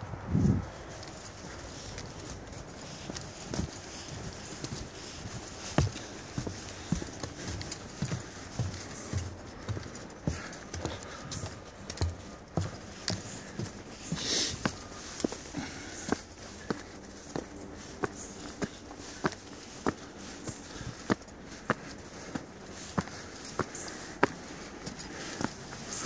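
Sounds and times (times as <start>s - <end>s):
footsteps on dirt trail: 0.2s - 26.0s.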